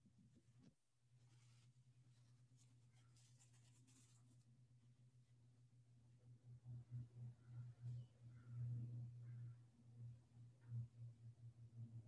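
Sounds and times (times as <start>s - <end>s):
steady low hum: 0.0s - 12.0s
clothing rustling: 0.1s - 4.5s.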